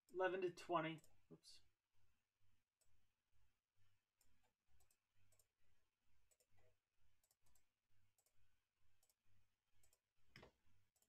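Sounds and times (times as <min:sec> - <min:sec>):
computer mouse clicks: 0:04.2 - 0:05.5, 0:06.3 - 0:08.4, 0:09.8 - 0:11.0.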